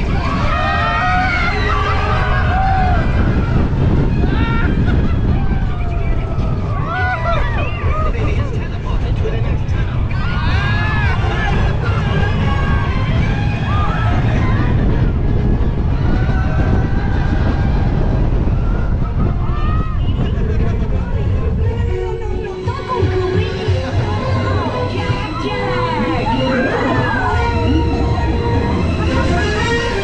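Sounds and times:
riders screaming: 0.0s - 8.1s
roller coaster rumbling on track: 0.0s - 30.0s.

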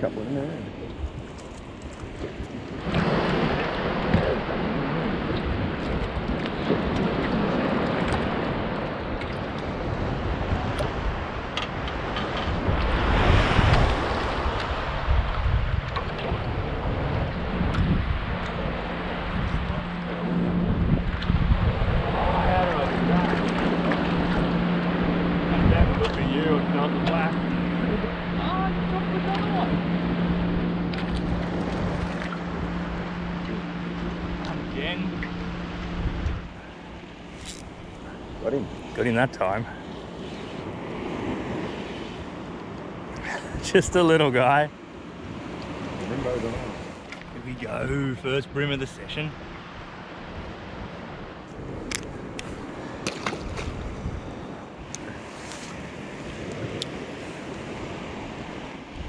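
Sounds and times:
wind buffeting microphone: 0.0s - 44.6s, 45.2s - 59.0s
water slapping against boat: 0.7s - 48.1s, 49.0s - 59.0s.

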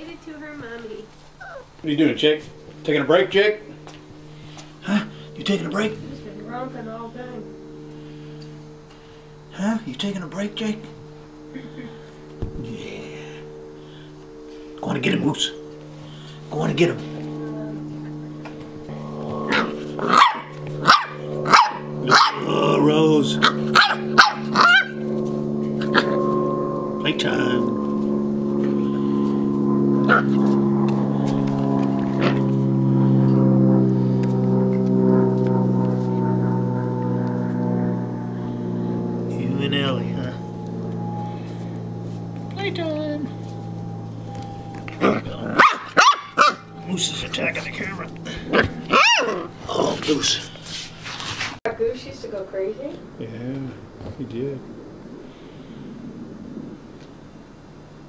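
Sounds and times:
steady low hum: 0.0s - 58.0s
puppy barking: 1.4s - 1.7s, 19.5s - 22.5s, 23.4s - 25.0s, 30.1s - 30.3s, 45.0s - 46.7s, 48.5s - 49.5s.

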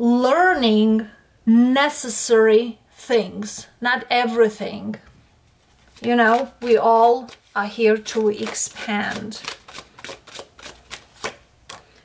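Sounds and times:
cards clicking and flicking: 6.0s - 12.0s.

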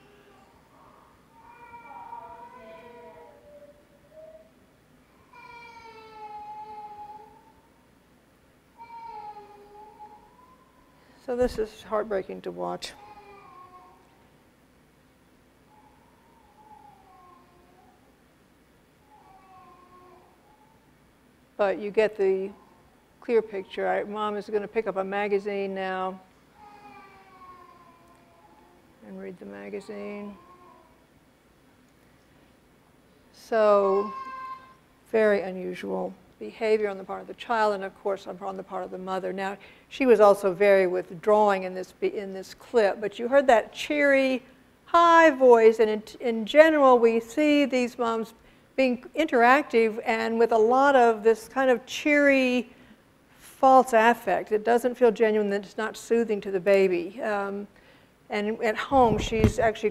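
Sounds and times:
toddler crying: 0.0s - 4.5s, 5.2s - 7.6s, 8.8s - 10.8s, 13.0s - 14.1s, 15.7s - 18.1s, 19.1s - 20.8s, 26.6s - 28.8s, 33.9s - 34.8s.

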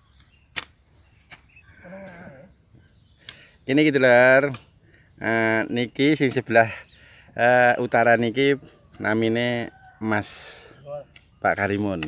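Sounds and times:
hoe striking soil: 0.1s - 2.4s.

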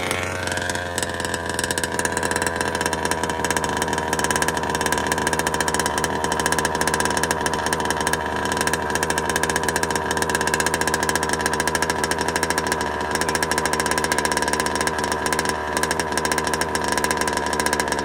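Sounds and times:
two-stroke engine idling: 0.0s - 18.0s.

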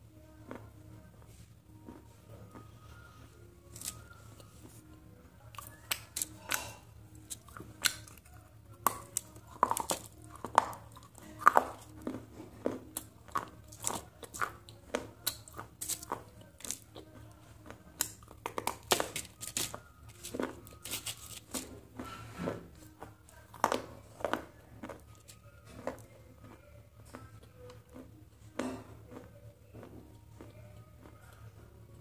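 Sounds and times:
close chewing and crunching noodles: 0.0s - 0.8s, 1.8s - 4.8s, 5.4s - 32.0s.

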